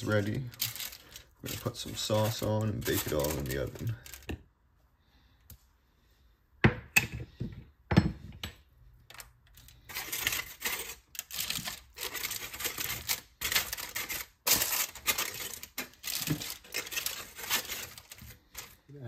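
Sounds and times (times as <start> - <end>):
aluminium foil crinkling: 0.0 - 4.3, 9.1 - 19.0.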